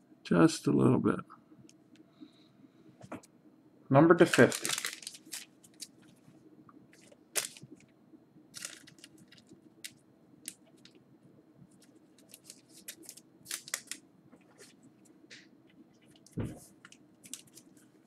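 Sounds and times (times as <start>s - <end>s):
faint steady hum: 0.0s - 18.0s
trading cards clicking and rustling: 11.8s - 14.7s.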